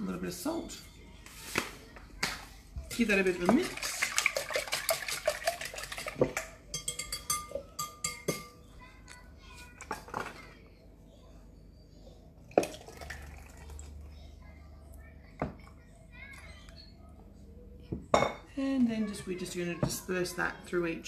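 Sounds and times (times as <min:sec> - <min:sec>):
whisk beating in a bowl: 0:02.9 - 0:08.2
whisk and bowl clinking: 0:02.9 - 0:08.6.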